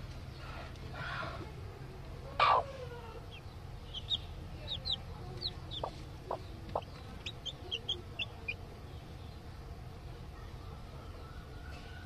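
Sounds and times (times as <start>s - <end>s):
hen clucking softly: 2.3s - 8.6s
chicks peeping: 2.3s - 9.4s.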